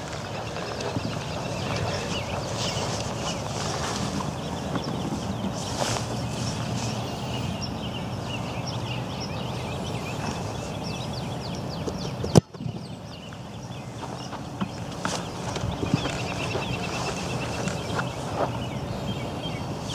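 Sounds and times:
small birds chirping: 0:00.0 - 0:19.9.

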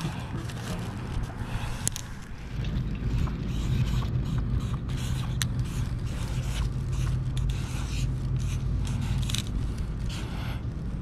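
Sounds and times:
steady low rumble: 0:00.0 - 0:11.0
marker rubbing and creaking on wall: 0:03.1 - 0:10.5.

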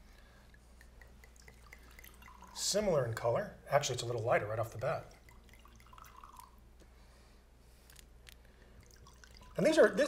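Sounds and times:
wine pouring into a glass: 0:00.0 - 0:03.2, 0:04.0 - 0:06.6, 0:08.8 - 0:10.0.

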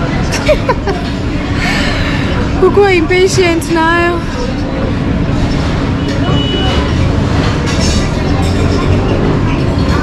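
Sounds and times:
faint chatter of diners: 0:00.0 - 0:10.0
restaurant din: 0:00.0 - 0:10.0.

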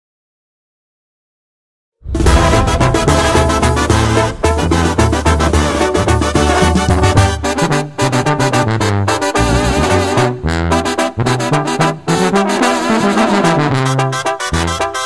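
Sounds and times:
low bass line: 0:02.0 - 0:07.6
steady drums: 0:02.0 - 0:07.9
brass section playing: 0:02.0 - 0:15.0.

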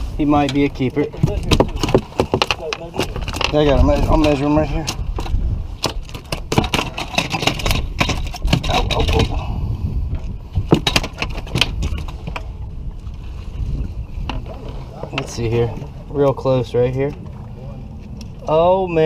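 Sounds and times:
steady low rumble: 0:07.6 - 0:19.0.

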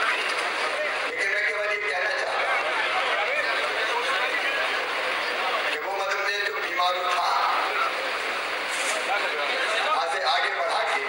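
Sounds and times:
dense background hubbub: 0:00.0 - 0:11.0
man speaking into microphone: 0:01.0 - 0:02.5, 0:05.6 - 0:08.0, 0:08.9 - 0:11.0.

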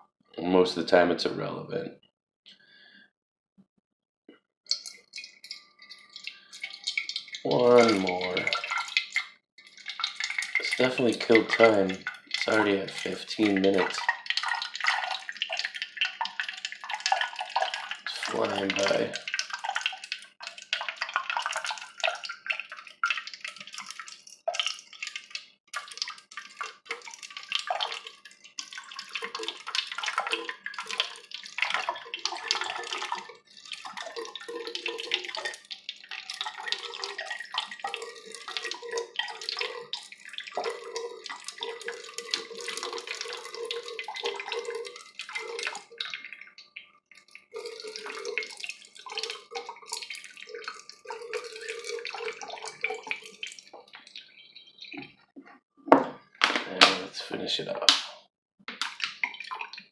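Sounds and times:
water trickling into a can: 0:04.7 - 0:55.3, 0:58.7 - 0:59.9.

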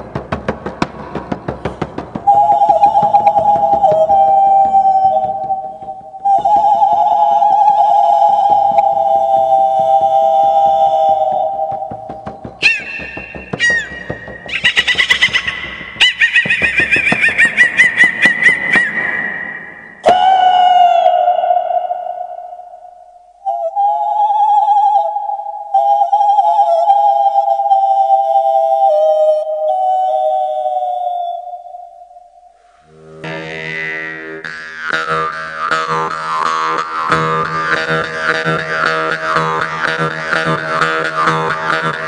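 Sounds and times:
low drone: 0:01.0 - 0:14.7
woman's high whistle-like vocal tone: 0:02.3 - 0:15.2, 0:18.2 - 0:32.6
jaw harp twanging: 0:11.4 - 0:22.8.

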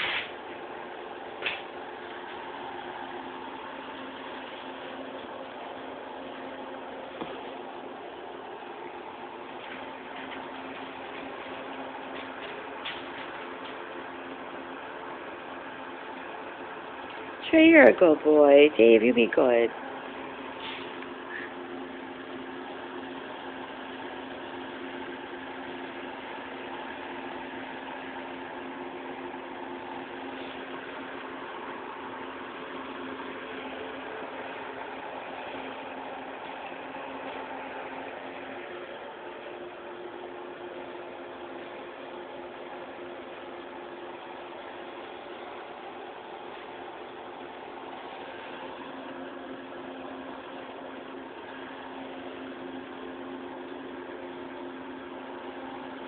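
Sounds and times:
constant hiss: 0:00.0 - 0:56.0
mechanical hum: 0:00.0 - 0:56.0.

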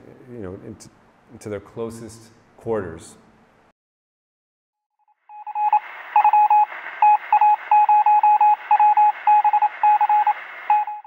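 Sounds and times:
morse code beeping: 0:05.3 - 0:11.0
radio static hiss: 0:05.7 - 0:10.8.

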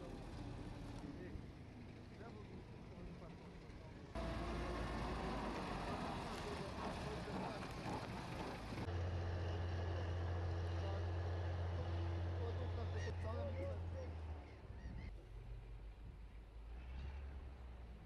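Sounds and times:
wheel loader diesel engine droning: 0:00.0 - 0:18.0
faint voices: 0:05.8 - 0:08.9.

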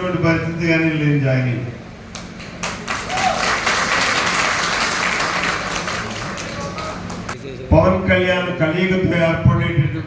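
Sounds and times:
audience applauding: 0:02.6 - 0:07.4.

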